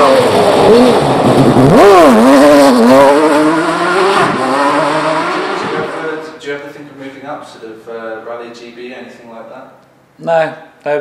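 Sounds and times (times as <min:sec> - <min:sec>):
rally car engine accelerating: 0:00.0 - 0:06.3.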